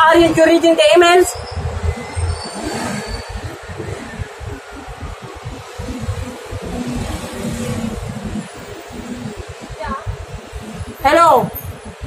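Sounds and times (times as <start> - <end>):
street background hiss: 0.0 - 12.0
wind buffeting microphone: 0.0 - 12.0.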